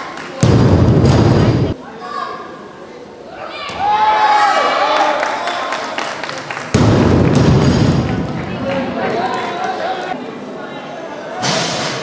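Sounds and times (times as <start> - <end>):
crowd noise in a hall: 0.0 - 12.0.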